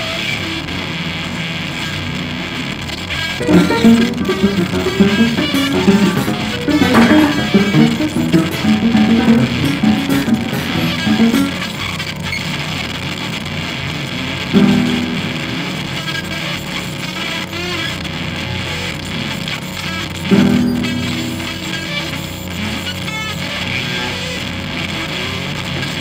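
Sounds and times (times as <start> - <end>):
ringing guitar chord: 3.4 - 12.0, 14.6 - 16.3, 20.3 - 22.8
guitar notes: 3.4 - 12.3, 14.5 - 16.5, 20.3 - 23.0.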